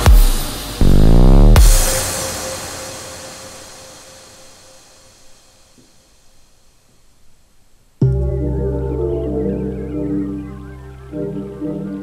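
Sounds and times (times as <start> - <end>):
electronic background music: 0.0 - 4.7, 8.0 - 12.0.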